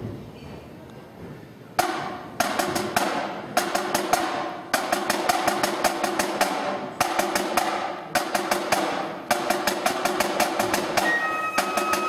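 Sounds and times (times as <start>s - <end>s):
snare drums playing a march: 1.8s - 12.0s
bagpipe drone: 11.0s - 12.0s.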